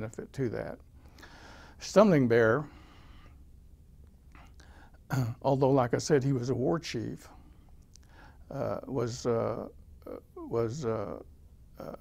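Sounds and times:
low steady hum: 0:00.0 - 0:12.0
soft breath: 0:01.0 - 0:01.8, 0:02.6 - 0:03.5, 0:04.3 - 0:05.0, 0:07.3 - 0:08.5.

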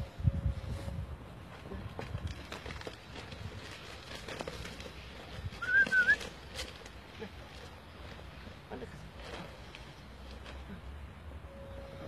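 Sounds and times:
rustles of movement in snow: 0:00.0 - 0:12.0
wavering whistle-like high tone: 0:05.6 - 0:06.2.

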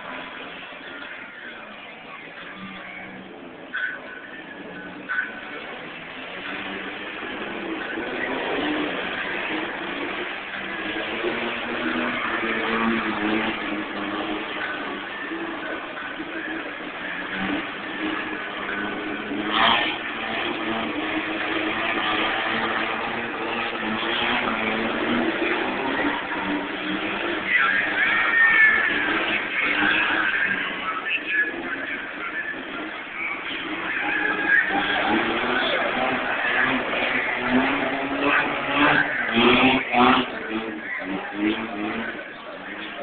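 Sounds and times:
car engine revving hard: 0:00.0 - 0:43.0.

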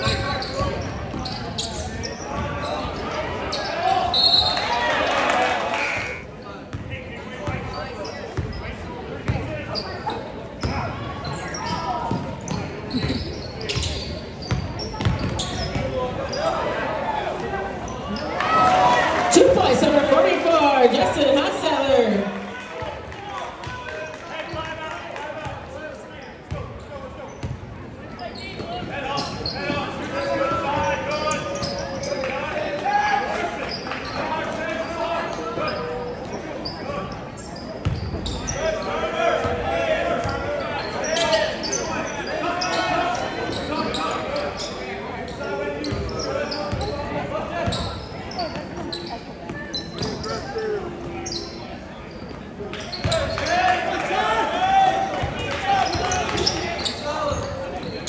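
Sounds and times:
voices calling out in gym: 0:00.0 - 0:58.0.

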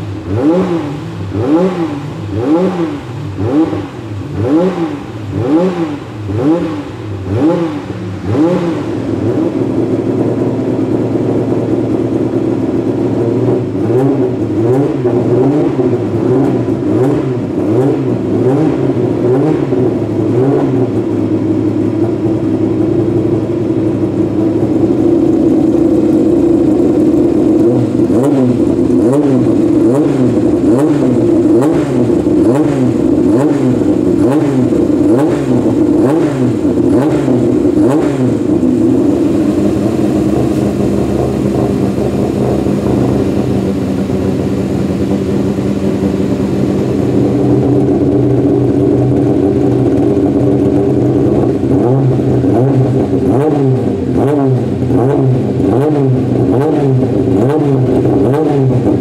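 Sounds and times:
exhaust cracks: 0:00.0 - 0:59.0
race car engine throttle blips: 0:00.0 - 0:59.0.

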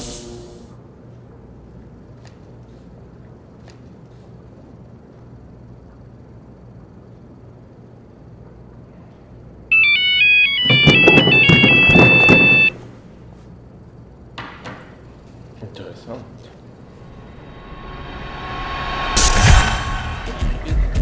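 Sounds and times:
phone ringtone: 0:09.7 - 0:12.8.

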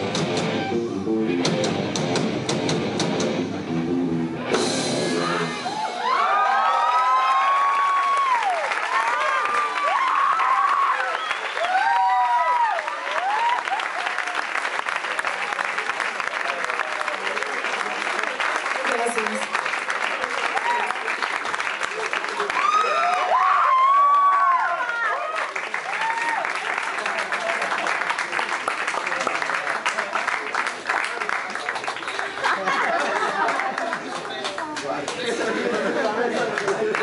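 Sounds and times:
rock song: 0:00.0 - 0:06.1
audience clapping and cheering: 0:05.3 - 0:37.0
whoops and shouts: 0:05.6 - 0:13.9, 0:22.5 - 0:26.5.

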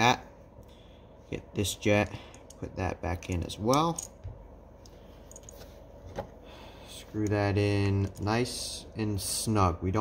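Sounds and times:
low room hum: 0:00.0 - 0:10.0
small metal parts clicking: 0:03.2 - 0:04.2.

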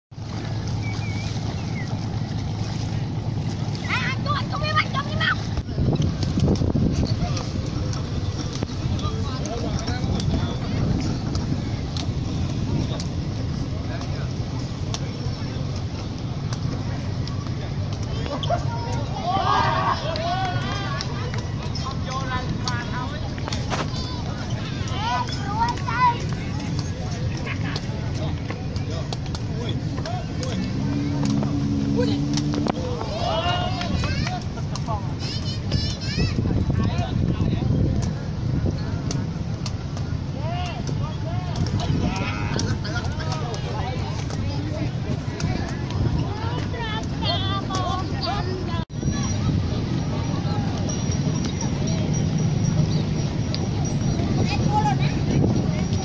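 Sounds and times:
steady low rumble: 0:00.0 - 0:56.0
low engine note: 0:00.1 - 0:19.4, 0:24.0 - 0:35.2
distant voices: 0:00.1 - 0:56.0
children shouting: 0:18.2 - 0:21.4, 0:32.0 - 0:36.5.

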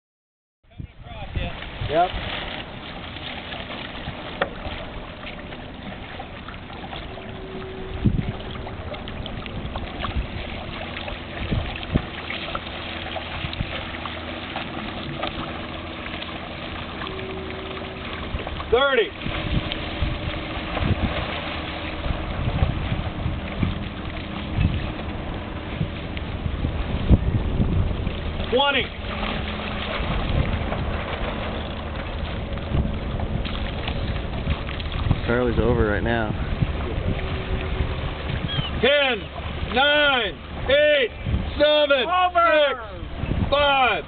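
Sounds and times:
wind rumbling on microphone: 0:00.7 - 0:44.0
water lapping: 0:00.8 - 0:44.0.

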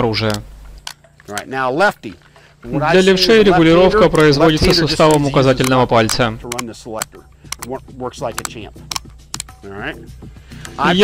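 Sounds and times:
rifle selector lever clicks: 0:00.2 - 0:01.5, 0:04.4 - 0:09.6.

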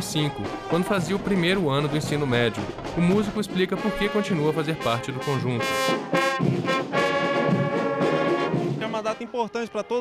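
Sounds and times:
brass band sustained chord: 0:03.1 - 0:10.0.

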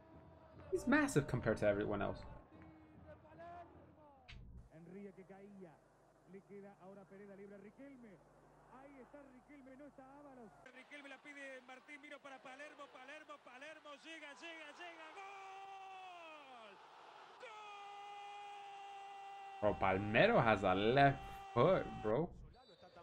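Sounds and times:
football commentator talking excitedly: 0:00.6 - 0:03.7, 0:06.4 - 0:16.8, 0:19.6 - 0:23.0
commentator long held shout: 0:14.2 - 0:22.3.

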